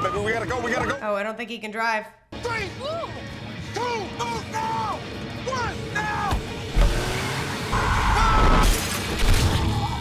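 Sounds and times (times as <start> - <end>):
man screaming: 7.8 - 8.6.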